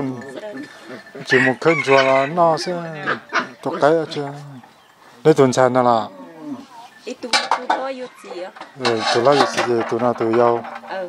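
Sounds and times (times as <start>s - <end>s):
people talking: 0.0s - 4.6s, 7.0s - 11.0s
kitchenware clinking: 7.0s - 11.0s.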